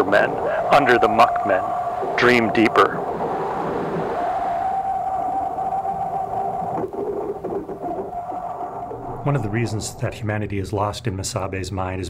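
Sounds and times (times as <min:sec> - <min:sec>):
low rumbling haze: 0:00.0 - 0:12.0
ambient drone tone: 0:04.6 - 0:12.0.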